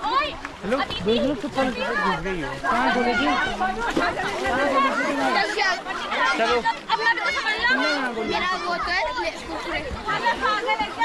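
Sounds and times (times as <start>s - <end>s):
overlapping group chatter: 0.0s - 11.0s.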